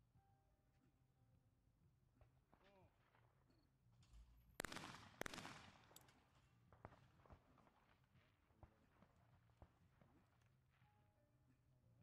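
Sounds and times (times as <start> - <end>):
shotgun shots with echo: 4.6 - 5.9.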